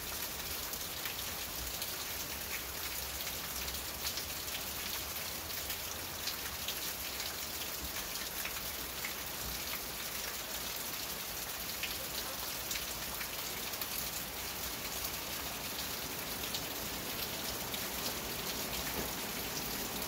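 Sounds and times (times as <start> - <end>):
rain on a roof: 0.0 - 20.0.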